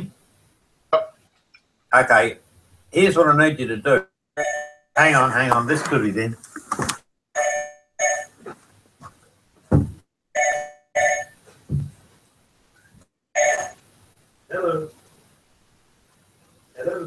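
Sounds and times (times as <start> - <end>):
telephone ringing: 4.4 - 5.2, 7.4 - 8.4, 10.4 - 11.4, 13.4 - 13.8.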